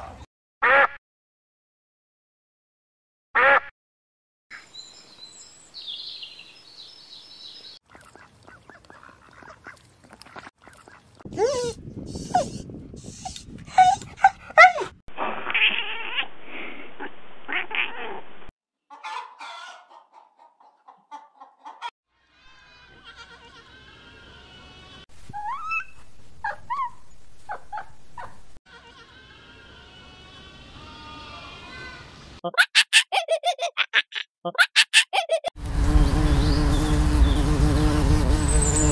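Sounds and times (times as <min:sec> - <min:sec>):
puppies yelping and whining: 0:11.4 - 0:12.6, 0:13.7 - 0:15.0.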